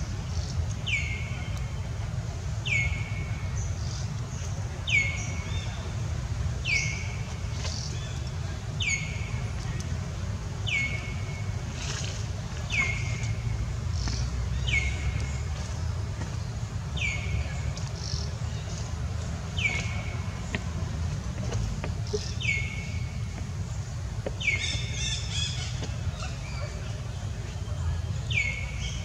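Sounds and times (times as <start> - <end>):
steady low rumble: 0.0 - 29.0
bird calling: 21.8 - 23.4, 24.3 - 27.1.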